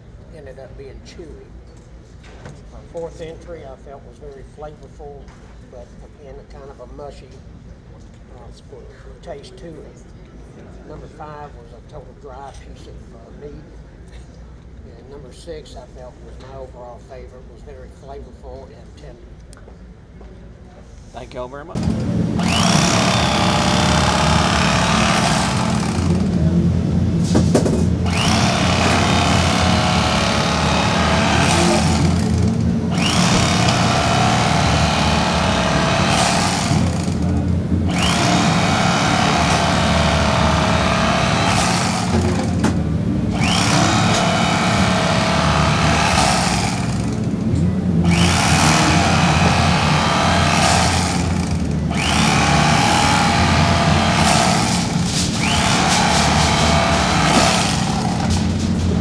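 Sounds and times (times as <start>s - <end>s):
electric carving knife cutting: 21.8s - 26.3s, 28.0s - 37.3s, 37.9s - 42.6s, 43.3s - 47.4s, 48.0s - 59.0s.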